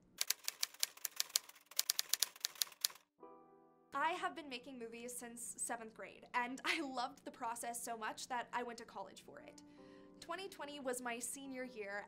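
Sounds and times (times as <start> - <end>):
typewriter keys clacking: 0.2 - 3.0.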